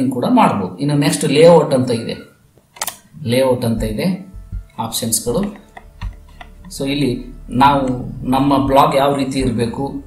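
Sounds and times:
speech: 0:00.0 - 0:02.3, 0:03.2 - 0:05.6, 0:06.7 - 0:10.0.

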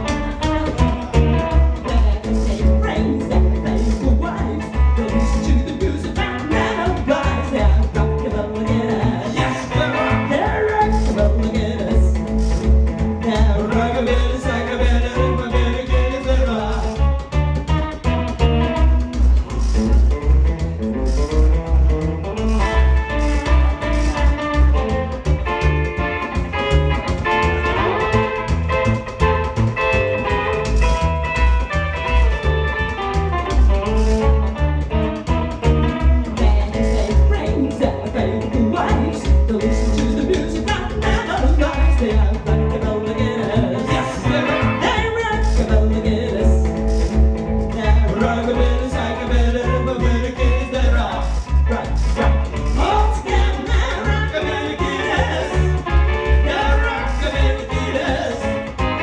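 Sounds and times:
hollow-body electric guitar: 0:00.0 - 0:59.0
upright double bass: 0:00.0 - 0:59.0.

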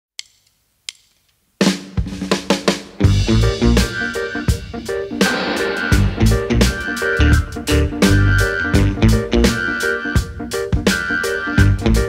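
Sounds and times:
sharp clicks: 0:00.2 - 0:01.2
drum kit hits: 0:01.7 - 0:09.6
band playing reggae: 0:02.1 - 0:12.0.

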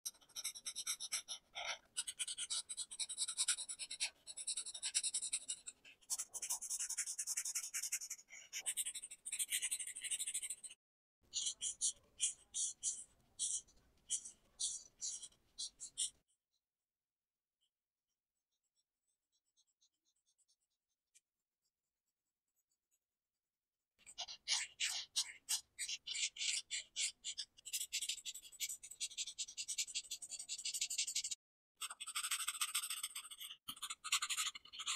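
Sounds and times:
marker scratching on paper: 0:00.1 - 0:16.2, 0:24.0 - 0:34.9.

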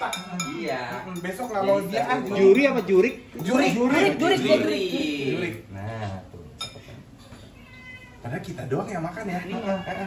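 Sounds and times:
cat meowing: 0:07.5 - 0:08.4, 0:09.3 - 0:10.0.

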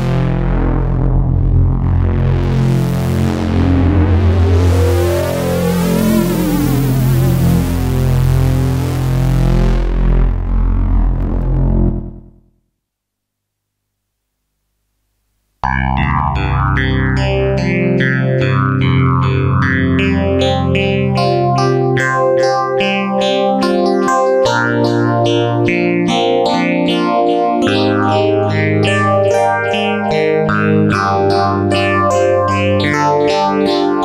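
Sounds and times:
held synth bass notes: 0:00.0 - 0:12.5, 0:15.6 - 0:34.0.

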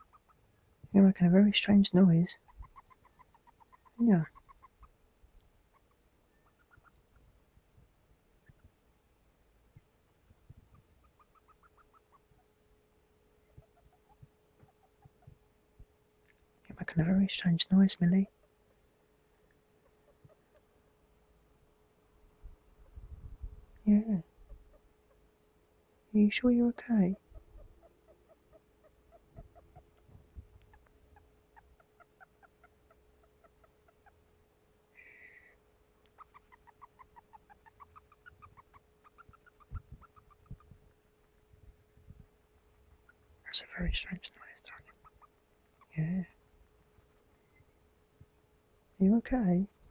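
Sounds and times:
hamster squeaking: 0:00.0 - 0:00.4, 0:02.3 - 0:05.0, 0:05.7 - 0:07.3, 0:10.3 - 0:12.6, 0:13.4 - 0:15.4, 0:26.9 - 0:34.4, 0:36.0 - 0:47.7, 0:49.7 - 0:49.9
hamster sniffing: 0:09.8 - 0:12.5, 0:27.0 - 0:34.2, 0:36.1 - 0:47.6.

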